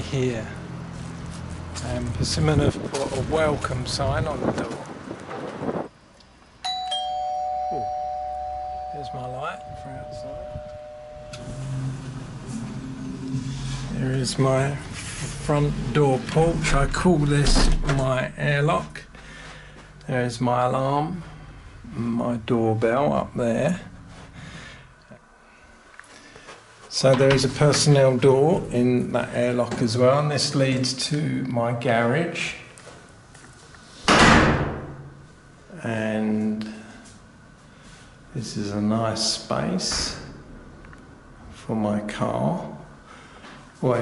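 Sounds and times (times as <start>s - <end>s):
thin high tone: 6.6s - 12.6s
steady low motor hum: 7.1s - 24.8s
door shutting with bang: 34.1s - 35.1s.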